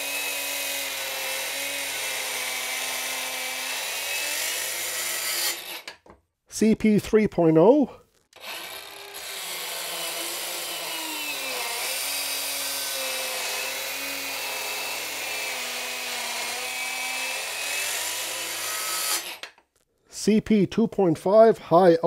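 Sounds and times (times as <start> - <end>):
circular saw cutting wood: 0.0 - 6.0, 8.4 - 19.6.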